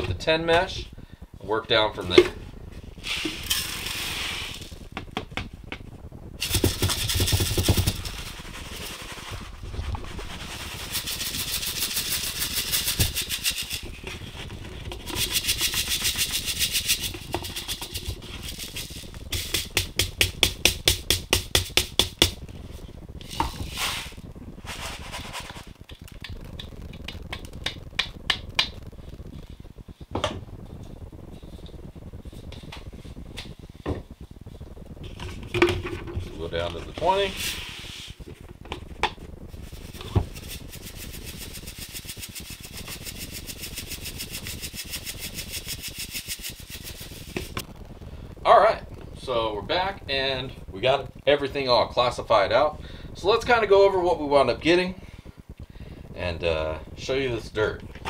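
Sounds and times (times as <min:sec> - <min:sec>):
grit rattling on wire mesh: 0:06.4 - 0:09.5, 0:10.2 - 0:14.0, 0:15.0 - 0:22.2, 0:39.7 - 0:47.6.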